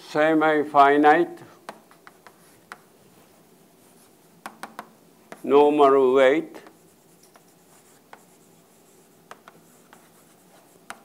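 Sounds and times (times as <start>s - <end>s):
chalk tapping on blackboard: 1.6s - 2.9s, 3.8s - 5.5s, 6.6s - 11.0s
chalk scraping on blackboard: 6.6s - 11.0s.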